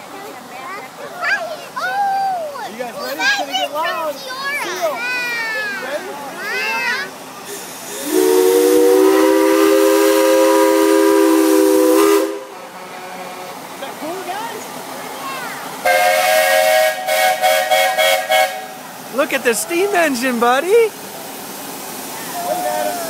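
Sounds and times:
hiss of steam: 6.4 - 23.0
steam whistle chord blasts: 7.8 - 12.6, 15.8 - 18.8.

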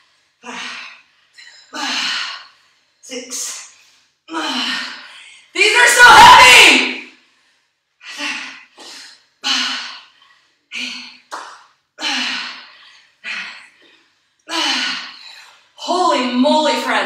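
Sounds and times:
woman breathing hard: 0.0 - 2.9, 7.2 - 11.3, 12.0 - 15.8.

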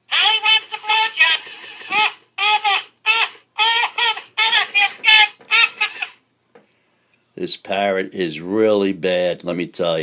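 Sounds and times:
toy parrot squawking: 0.1 - 6.2.

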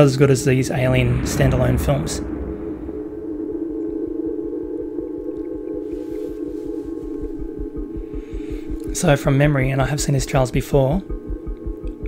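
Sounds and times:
sustained droning tone: 0.7 - 4.6
low regular pulse: 0.7 - 5.1.

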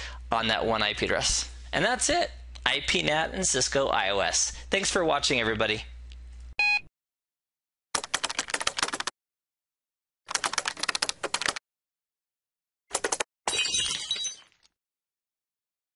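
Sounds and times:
keyboard typing clicks: 8.0 - 9.1, 10.3 - 11.6.

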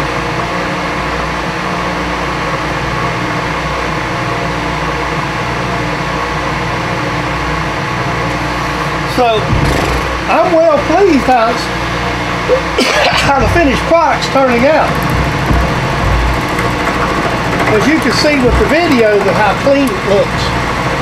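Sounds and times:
milling machine humming and whining: 0.0 - 21.0
machine table cranked by hand: 13.1 - 21.0.

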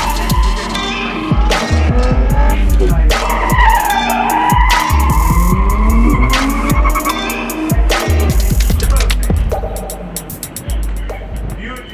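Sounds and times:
tyres squealing: 0.0 - 7.8
music with heavy bass beat: 0.0 - 11.9.

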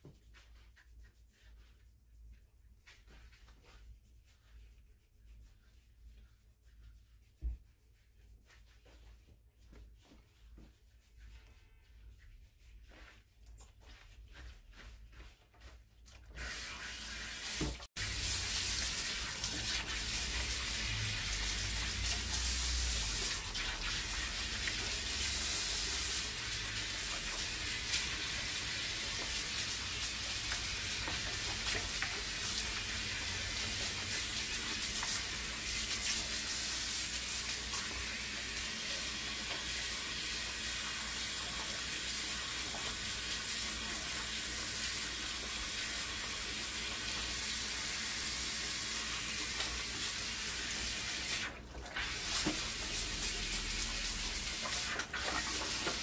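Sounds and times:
spray hose water hissing: 16.3 - 44.0, 44.6 - 56.0.

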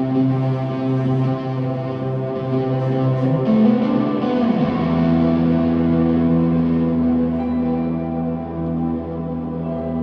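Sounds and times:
electric guitar droning note: 0.0 - 10.0.

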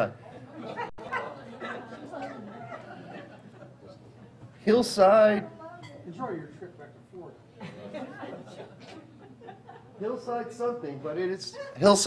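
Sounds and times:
people chattering quietly: 0.0 - 10.5.

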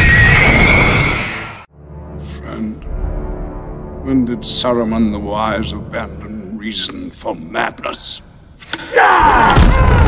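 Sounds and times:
high wailing shriek: 0.0 - 1.6
orchestral score: 1.6 - 9.3.

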